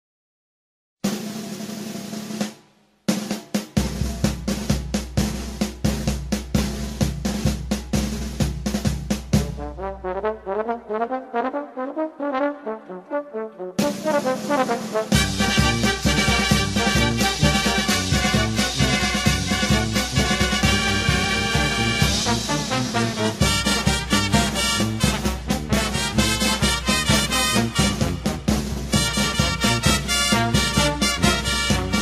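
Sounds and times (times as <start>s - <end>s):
snare drum rapid drumming: 1.0s - 10.2s, 13.8s - 32.0s
brass band music: 5.2s - 32.0s
sustained brass chord: 9.5s - 28.0s.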